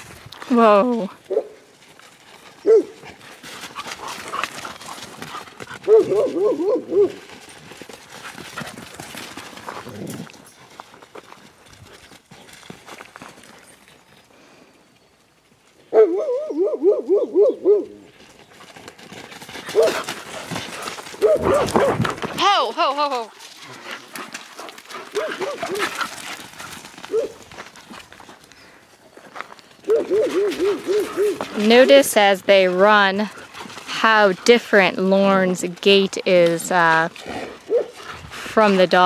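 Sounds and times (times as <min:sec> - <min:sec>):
dogs yelping barks: 0:02.6 - 0:03.0, 0:05.7 - 0:07.2, 0:15.9 - 0:18.1, 0:19.7 - 0:20.1, 0:21.1 - 0:22.2, 0:25.0 - 0:26.1, 0:27.1 - 0:27.4, 0:29.8 - 0:31.7, 0:37.6 - 0:38.0
animal feet thudding on dirt: 0:18.1 - 0:34.9.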